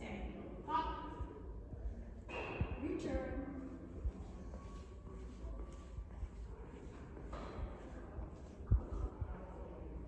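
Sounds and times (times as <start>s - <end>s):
soft footsteps on rubber matting: 3.4s - 9.6s.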